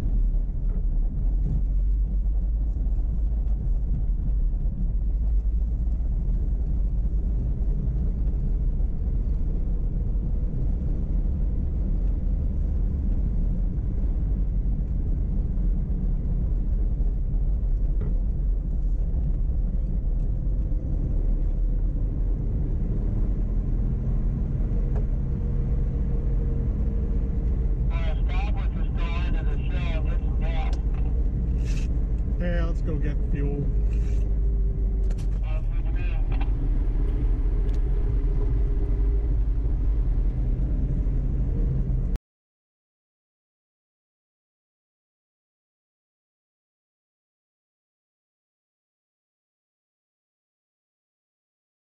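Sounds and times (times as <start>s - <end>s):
tyres on paved road: 0.0s - 42.2s
vehicle engine rumble: 0.0s - 42.2s
indistinct voices: 27.9s - 31.8s, 35.4s - 36.6s.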